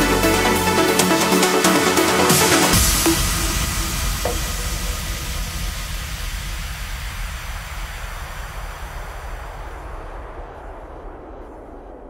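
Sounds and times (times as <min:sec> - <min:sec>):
trance music: 0:00.0 - 0:12.0
white noise over deep rumble: 0:00.0 - 0:12.0.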